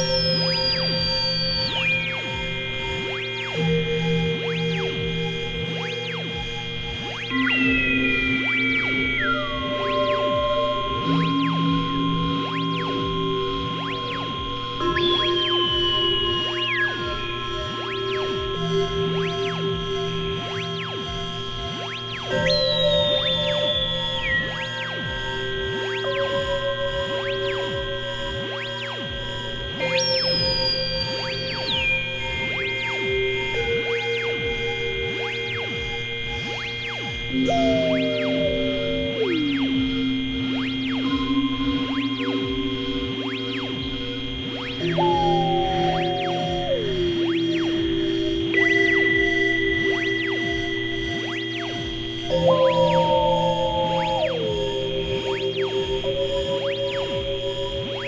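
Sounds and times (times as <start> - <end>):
pulsing repeated synth note: 0.0 - 58.0
synthesizer drone music: 0.0 - 58.0
synth tone sliding down in pitch: 37.3 - 40.7, 44.6 - 48.8, 52.3 - 55.8.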